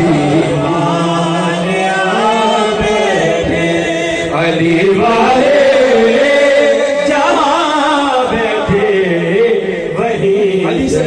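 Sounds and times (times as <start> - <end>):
men chanting without instruments: 0.0 - 11.0.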